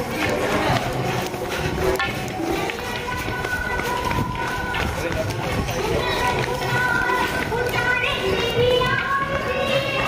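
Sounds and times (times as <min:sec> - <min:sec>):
hurried footsteps on pavement: 0:00.0 - 0:10.0
voices of people: 0:00.0 - 0:10.0.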